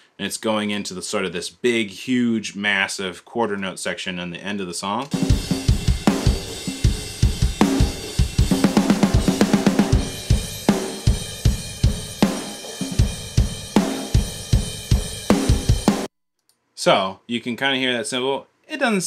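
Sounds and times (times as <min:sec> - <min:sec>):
rock drum kit playing: 0:05.1 - 0:16.1.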